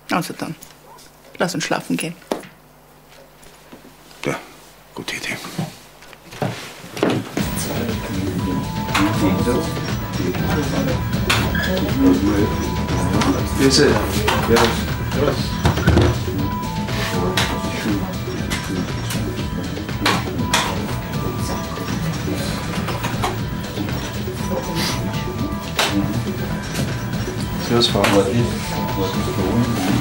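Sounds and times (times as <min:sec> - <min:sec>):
background music: 0:07.4 - 0:30.0
electronic machine tones: 0:07.4 - 0:30.0.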